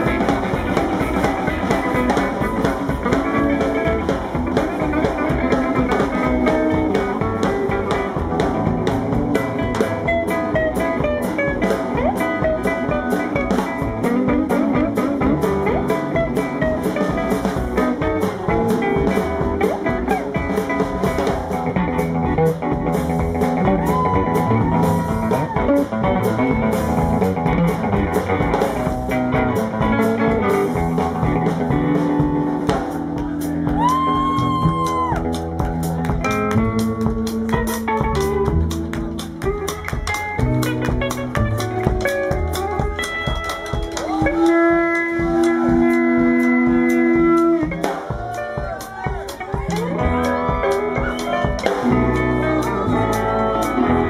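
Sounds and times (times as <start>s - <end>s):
drums: 0.0s - 54.0s
electric guitar lead: 0.0s - 54.0s
upright bass: 0.0s - 54.0s.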